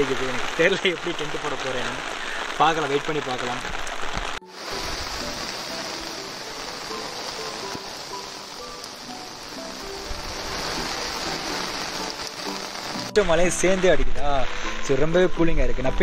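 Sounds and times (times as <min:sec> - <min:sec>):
steady rain falling: 0:00.0 - 0:16.0
soft background music: 0:04.4 - 0:16.0.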